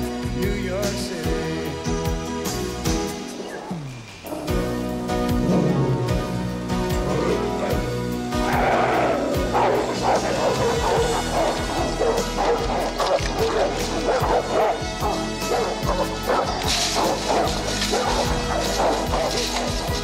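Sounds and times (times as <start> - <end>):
film music: 0.0 - 20.0
dogs barking: 2.9 - 20.0.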